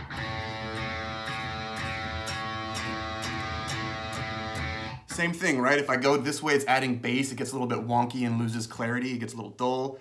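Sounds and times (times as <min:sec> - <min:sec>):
electric guitar string picked: 0:00.0 - 0:05.2.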